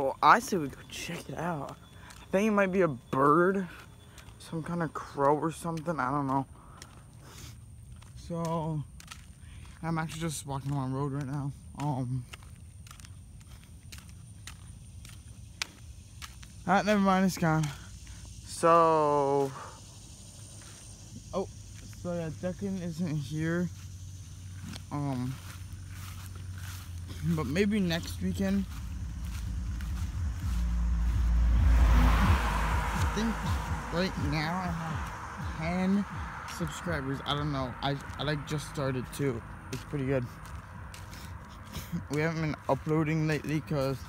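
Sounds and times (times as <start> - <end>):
vehicle tyre and road noise: 0.0 - 44.0
footsteps scuffing on asphalt: 0.4 - 18.4, 19.4 - 44.0
low steady rumble: 25.3 - 38.6.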